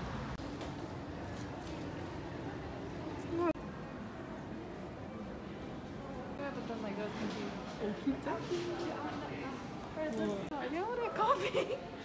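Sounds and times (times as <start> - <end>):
traffic hum: 0.0 - 7.0.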